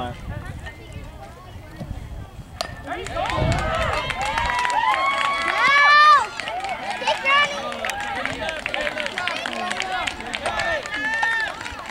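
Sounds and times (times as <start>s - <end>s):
crowd cheering and calling out: 2.6s - 11.9s.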